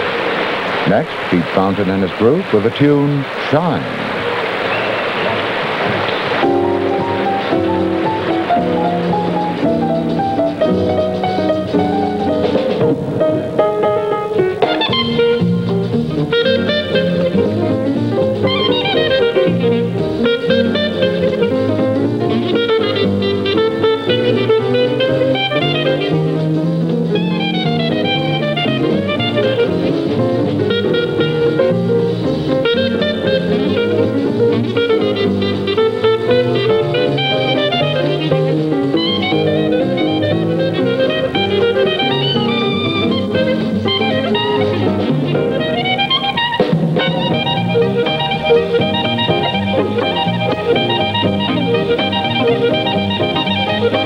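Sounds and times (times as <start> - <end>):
guitar: 0.0 - 54.0
clarinet melodic runs: 6.4 - 54.0.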